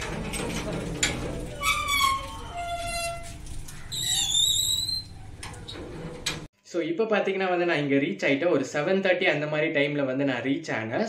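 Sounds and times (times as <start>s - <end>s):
metal gate hinges squealing: 0.0s - 6.5s.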